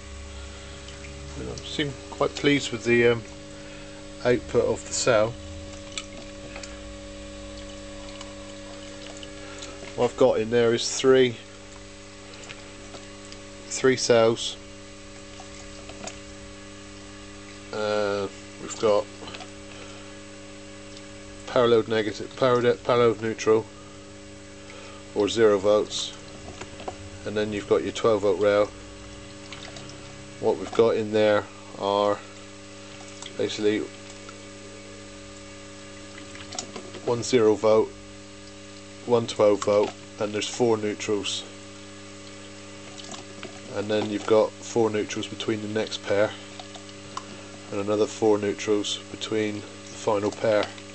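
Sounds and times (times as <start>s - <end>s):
gas bubbling fizz: 0.0s - 10.3s, 23.7s - 37.0s
transformer electrical hum: 0.0s - 50.9s.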